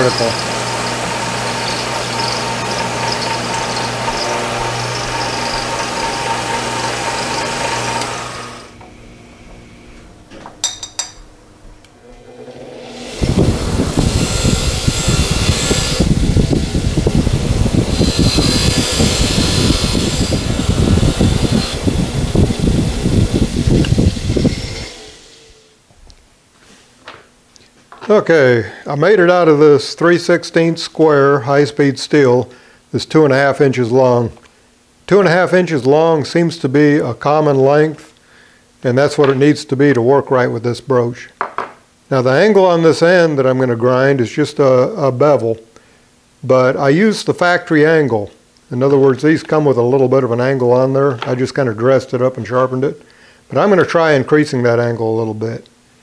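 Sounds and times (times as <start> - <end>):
bench grinder grinding metal: 0.0 - 8.8, 12.0 - 25.7
milling machine cutting steel: 0.0 - 8.8, 12.0 - 25.6.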